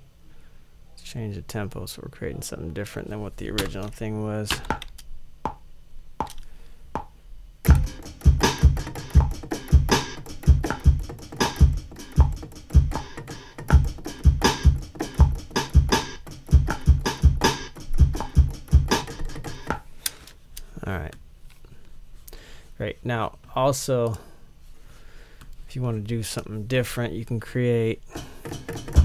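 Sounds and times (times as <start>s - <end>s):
sampled drum hits: 7.7s - 19.8s, 28.2s - 29.0s.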